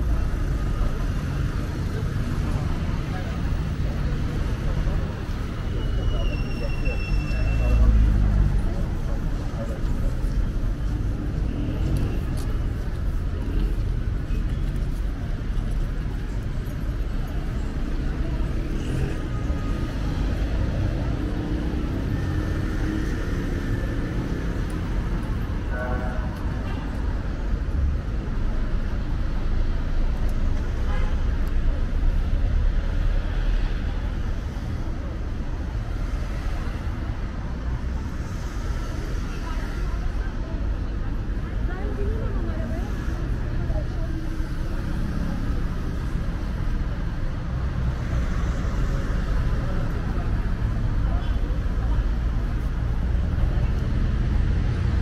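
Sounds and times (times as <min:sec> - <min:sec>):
passers-by talking: 0:00.0 - 0:55.0
road traffic rumble: 0:00.0 - 0:55.0.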